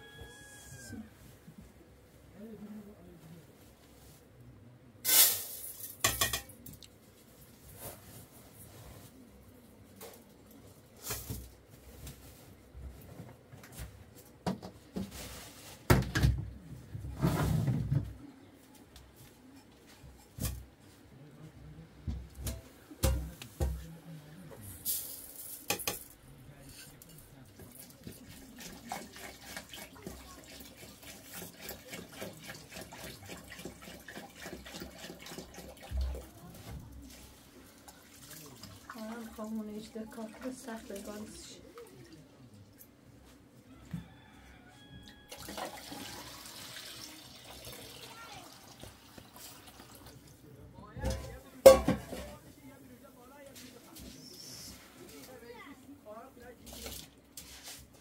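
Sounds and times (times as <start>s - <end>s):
metal pots clanking: 5.1s - 6.5s, 51.0s - 52.4s
water pouring into metal pot: 27.7s - 36.3s, 45.3s - 50.3s.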